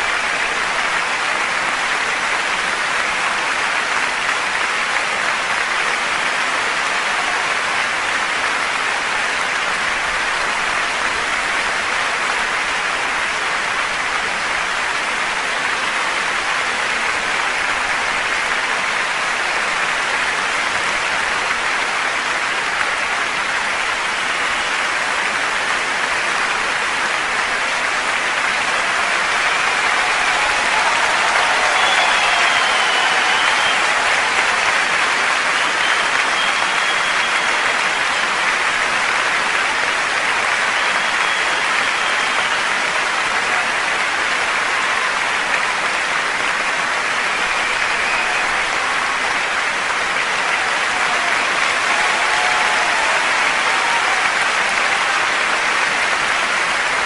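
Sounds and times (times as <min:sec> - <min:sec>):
audience applauding: 0:00.0 - 0:57.0.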